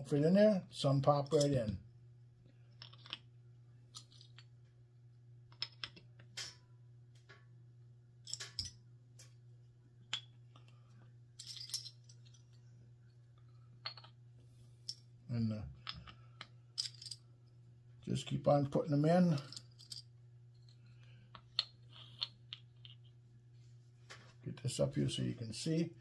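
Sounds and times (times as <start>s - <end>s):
faint steady hum: 0.0s - 26.0s
metal bottle caps clicking: 21.4s - 23.1s.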